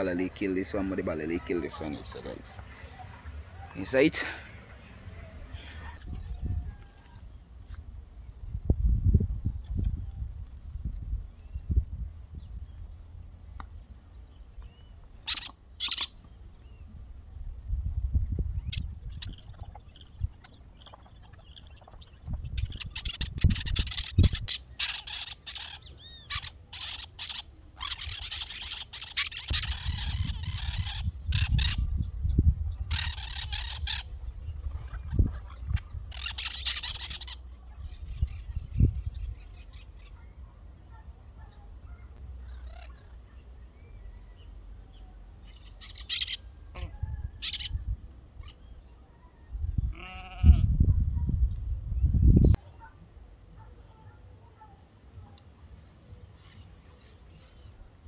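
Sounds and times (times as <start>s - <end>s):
birds calling harshly: 14.0s - 51.2s, 55.7s - 58.0s.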